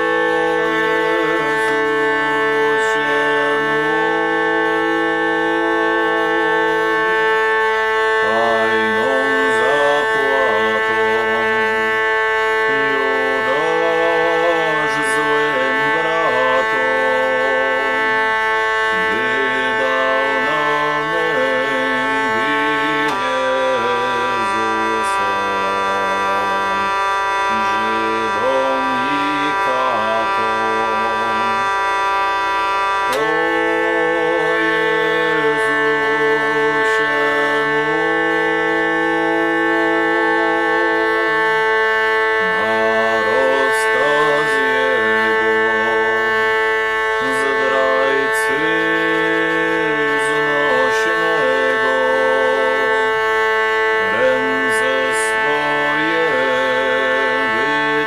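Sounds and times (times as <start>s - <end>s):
hurdy-gurdy playing: 0.0s - 58.0s.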